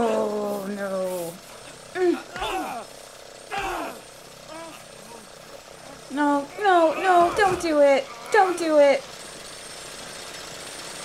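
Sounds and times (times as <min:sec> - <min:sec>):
lawnmower engine running: 0:00.0 - 0:11.0
grunts of a struggle: 0:01.9 - 0:02.9, 0:03.5 - 0:05.4.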